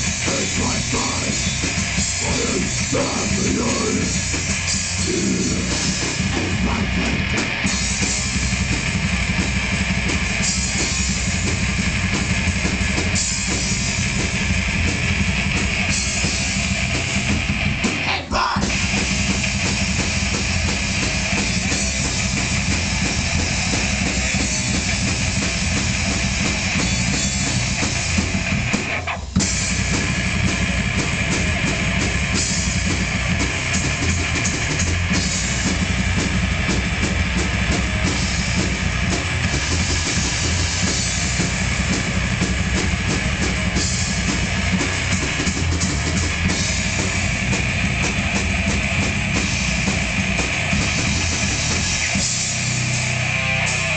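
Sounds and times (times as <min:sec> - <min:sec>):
distorted electric guitars: 0:00.0 - 0:53.9
metal band playing live: 0:00.0 - 0:53.9
rapid drumming with bass drum: 0:00.0 - 0:53.9.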